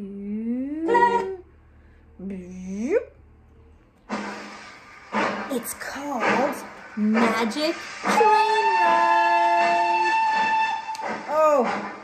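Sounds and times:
short noisy rush: 4.1s - 12.0s.

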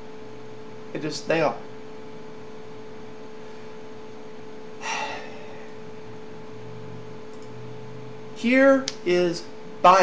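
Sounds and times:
room hum with faint tone: 0.0s - 10.0s
man gasping: 4.8s - 5.8s.

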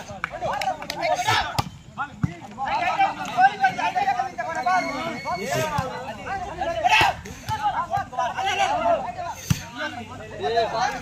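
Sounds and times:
people shouting: 2.6s - 9.1s.

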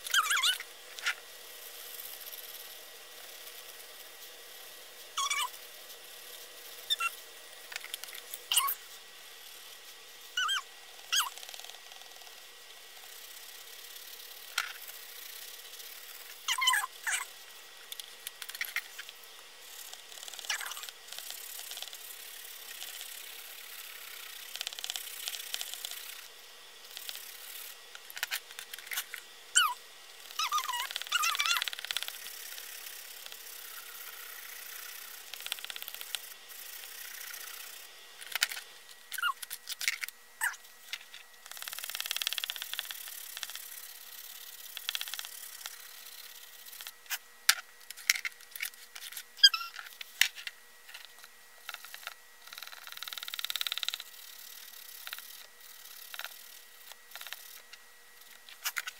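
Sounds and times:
warbling high-pitched sound: 5.2s - 5.5s
pencil crayons scratching on paper: 5.2s - 8.9s, 13.0s - 17.4s, 18.3s - 26.3s, 26.9s - 38.6s, 51.0s - 58.9s
pencils clicking on table: 30.4s - 36.3s, 41.5s - 43.7s, 44.6s - 45.9s, 49.9s - 54.1s, 56.0s - 57.6s.

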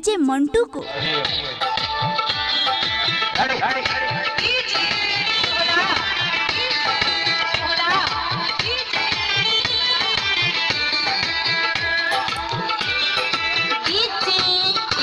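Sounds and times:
loud dance music: 1.1s - 15.0s.

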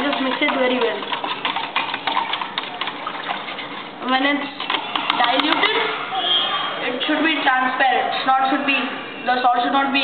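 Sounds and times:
water swishing in mug: 0.0s - 5.9s.

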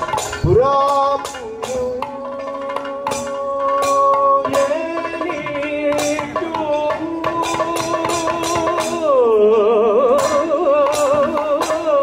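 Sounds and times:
drum strokes: 0.0s - 12.0s.

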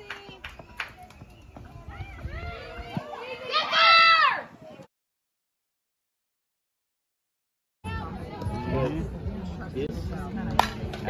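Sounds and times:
spectators chatting: 7.8s - 11.0s.

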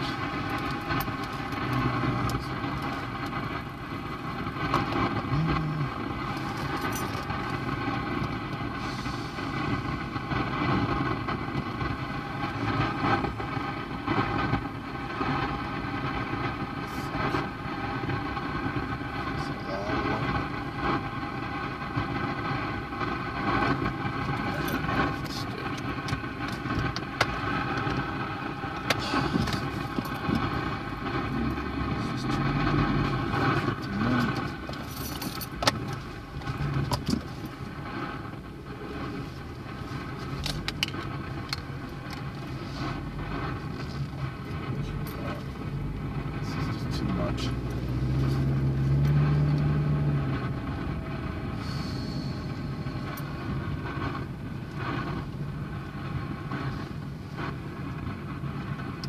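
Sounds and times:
car engine running: 0.0s - 59.0s
indistinct voices: 5.2s - 6.6s, 31.0s - 35.0s.

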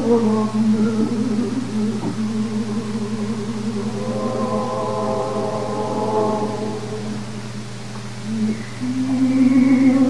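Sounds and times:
cantor singing held notes: 0.0s - 10.0s
steady low drone: 1.2s - 8.5s.

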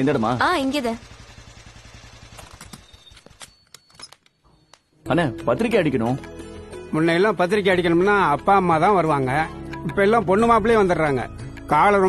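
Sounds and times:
motorcycle engine idling: 0.0s - 3.4s.

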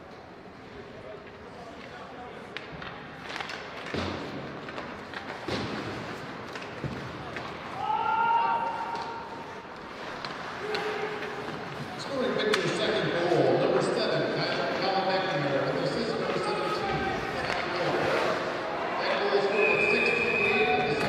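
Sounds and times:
hockey sticks and puck knocking: 1.2s - 7.8s, 8.9s - 18.4s.

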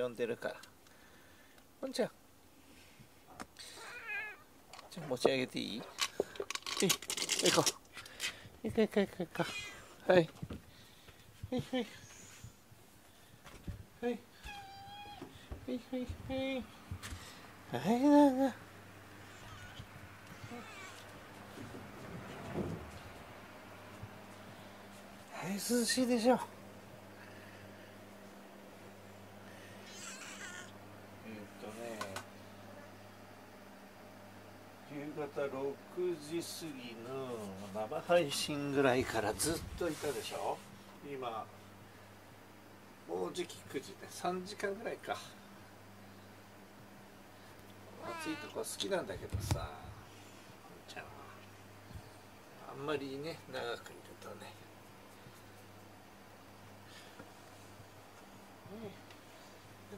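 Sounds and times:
cat vocalization: 3.8s - 4.4s, 48.0s - 48.6s
cat meowing: 3.8s - 4.5s, 14.4s - 15.3s, 19.2s - 21.0s, 48.0s - 48.6s.

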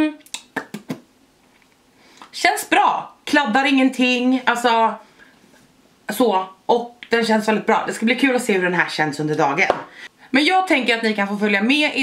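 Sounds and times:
lips smacking wet clicks: 0.2s - 1.0s.

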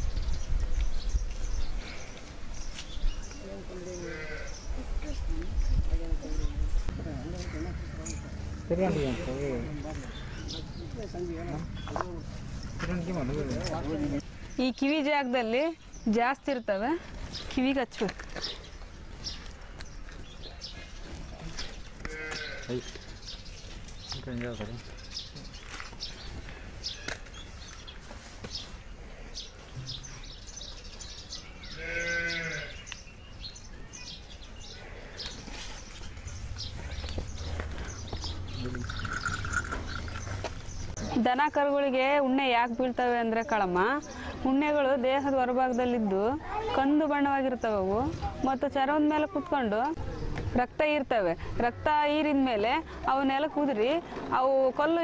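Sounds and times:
small birds chirping: 0.0s - 54.0s
farm animal call: 3.7s - 4.6s, 22.0s - 22.8s, 31.5s - 32.8s
livestock bleating: 3.9s - 4.7s, 22.0s - 22.8s, 31.6s - 32.8s.

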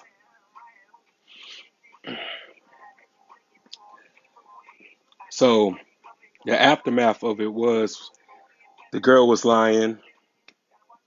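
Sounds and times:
man breathing: 1.2s - 2.6s.

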